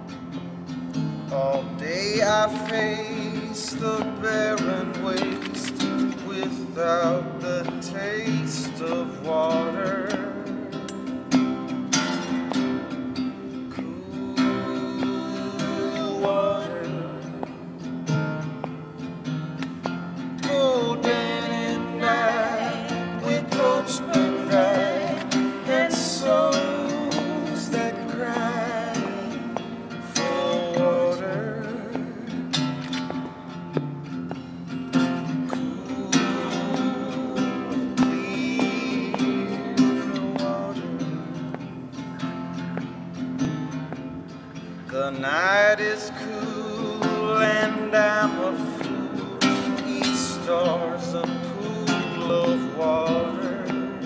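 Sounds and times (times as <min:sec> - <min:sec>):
acoustic guitar strumming: 0:00.0 - 0:54.0
person singing: 0:01.4 - 0:11.1, 0:13.6 - 0:17.8, 0:20.3 - 0:33.2, 0:35.2 - 0:41.8, 0:45.0 - 0:54.0.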